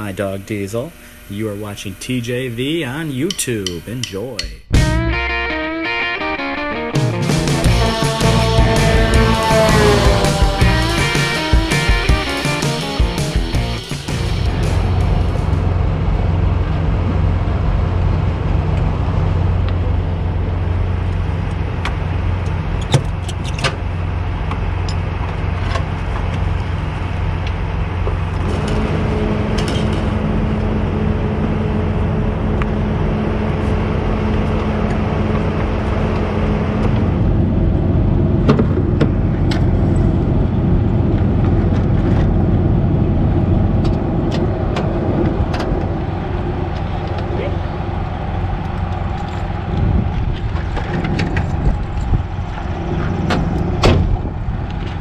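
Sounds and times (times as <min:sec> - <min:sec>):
second steady hum: 0:00.0 - 0:22.9, 0:23.8 - 0:55.0
diesel engine idling: 0:07.6 - 0:55.0.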